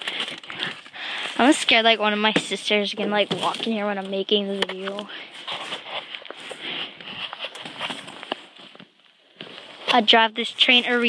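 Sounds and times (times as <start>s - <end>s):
clothing rustling: 0.0s - 11.0s.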